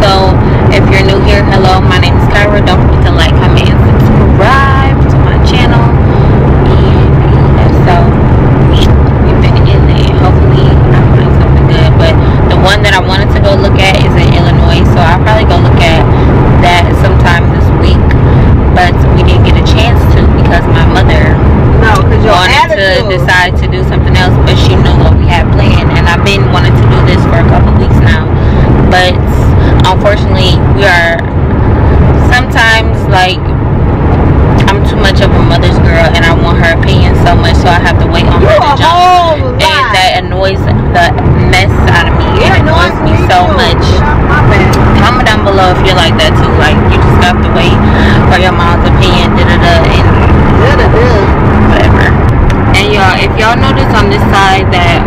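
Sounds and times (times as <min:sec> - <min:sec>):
woman talking: 0:00.0 - 0:31.3, 0:32.1 - 0:33.5, 0:34.6 - 0:55.0
car cabin rumble: 0:00.0 - 0:55.0.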